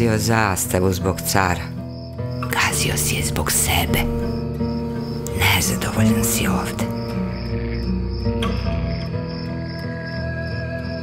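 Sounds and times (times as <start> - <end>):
crickets chirping: 0.0 - 11.0
music with sustained notes: 0.0 - 11.0.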